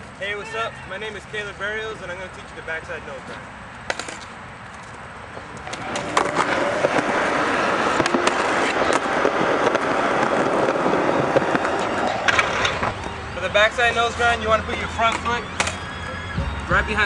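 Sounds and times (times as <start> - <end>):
skateboard wheels rolling on concrete: 0.0 - 17.0
skateboard clacking on concrete: 5.6 - 13.0.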